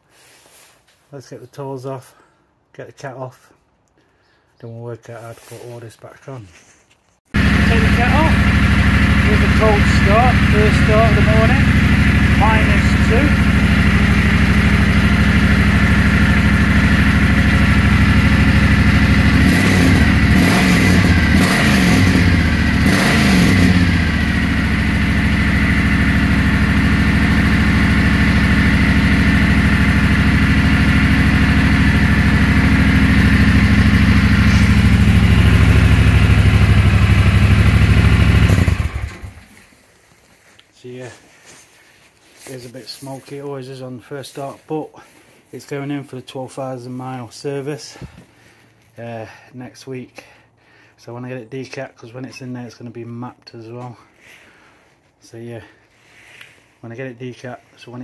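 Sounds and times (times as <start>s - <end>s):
motorcycle engine idling: 7.4s - 39.6s.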